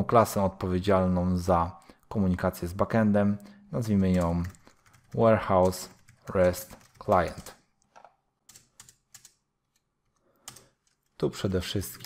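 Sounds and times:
computer keyboard keystrokes: 0:04.1 - 0:11.2.

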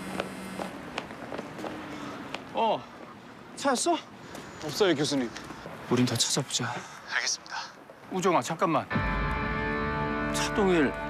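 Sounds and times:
running footsteps on pavement: 0:00.0 - 0:05.8.

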